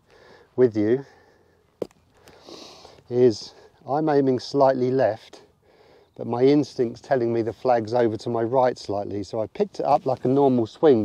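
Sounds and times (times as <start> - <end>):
person inhaling: 0.0 - 3.0, 5.6 - 6.2.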